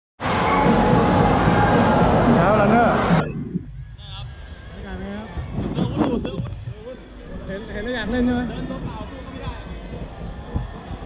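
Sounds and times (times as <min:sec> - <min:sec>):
crowd voices talking and calling: 0:00.2 - 0:11.0.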